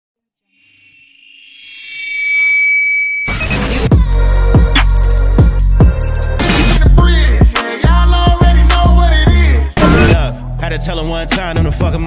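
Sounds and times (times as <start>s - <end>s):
synth swell: 0.5s - 3.9s
heavy bass hit: 6.9s - 10.4s.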